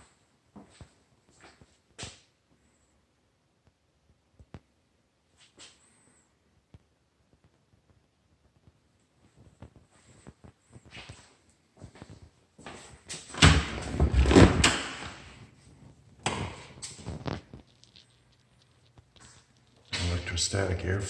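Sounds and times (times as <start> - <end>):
knocks and rustling: 13.1 - 20.3
door opening and closing: 13.2 - 15.4, 16.2 - 17.1.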